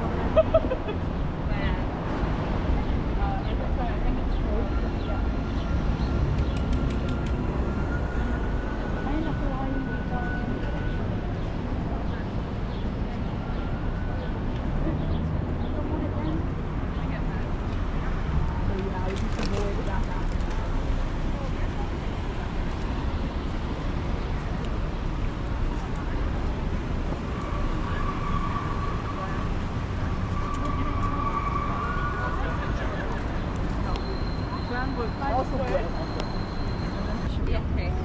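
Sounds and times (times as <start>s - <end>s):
pedestrian chatter: 0.0s - 38.0s
traffic noise: 0.0s - 38.0s.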